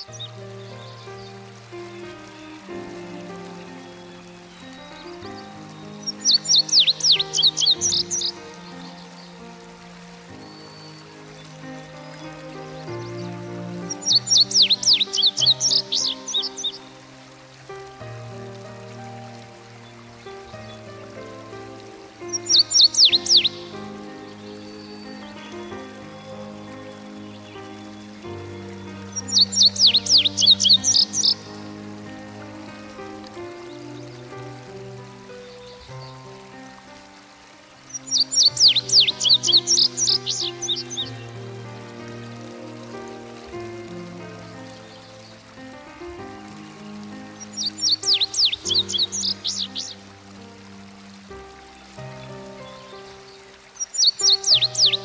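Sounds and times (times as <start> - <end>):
soft music of sustained chords: 0.0 - 55.0
songbird chirping: 0.0 - 55.0.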